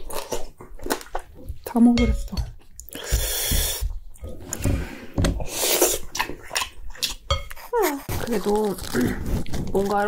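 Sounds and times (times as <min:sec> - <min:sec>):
wet mixing and scraping in bowl: 0:05.8 - 0:10.0.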